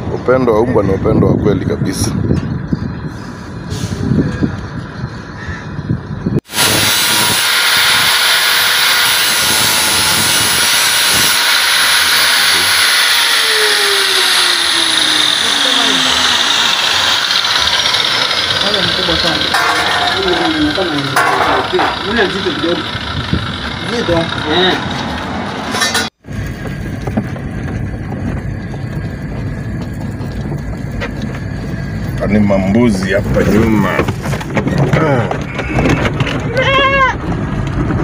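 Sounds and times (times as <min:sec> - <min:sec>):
angle grinder grinding steel: 0:06.5 - 0:26.2.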